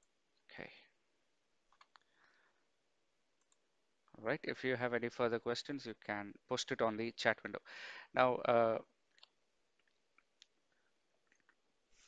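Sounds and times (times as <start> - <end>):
computer mouse clicks: 1.7 - 2.1.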